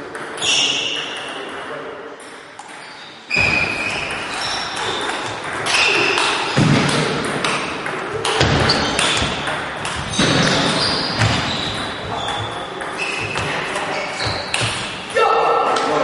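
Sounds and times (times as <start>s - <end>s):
voices in a hall: 0.0s - 16.0s.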